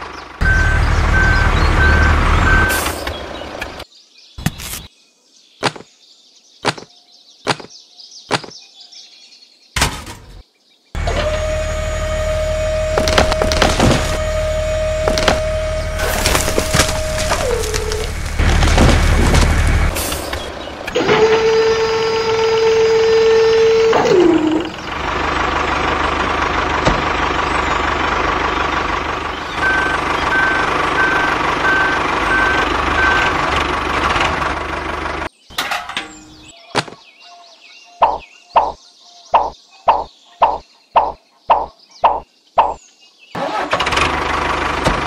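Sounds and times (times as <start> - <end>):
clay bricks clattering and sliding: 16.0 - 20.4.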